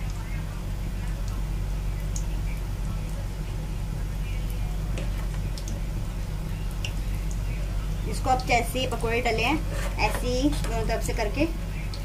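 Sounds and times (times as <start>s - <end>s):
food deep-frying in oil: 0.0s - 12.0s
steady low hum: 0.0s - 12.0s.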